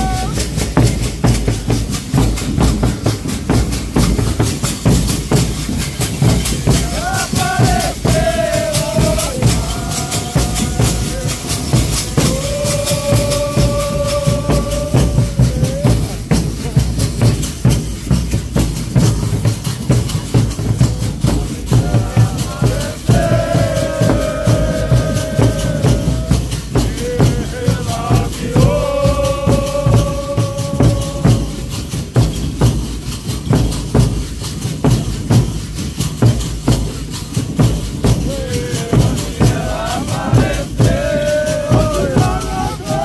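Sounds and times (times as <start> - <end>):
person singing: 0.0 - 0.5, 6.8 - 16.2, 21.7 - 31.8, 38.2 - 43.0
large drums beating a rhythm: 0.0 - 43.0
shaken rattles: 0.0 - 43.0.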